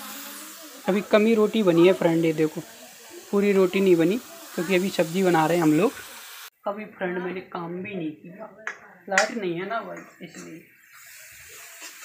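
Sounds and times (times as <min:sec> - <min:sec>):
spices sizzling in hot oil: 0:00.0 - 0:06.5, 0:10.0 - 0:12.0.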